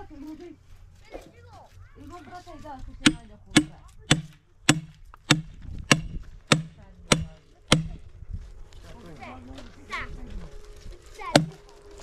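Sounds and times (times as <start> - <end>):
hand tool chopping wood: 3.0 - 8.1, 11.3 - 11.6.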